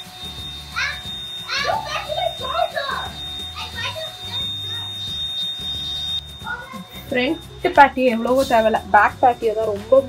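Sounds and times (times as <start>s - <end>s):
handheld vacuum cleaner whining: 0.0s - 10.0s.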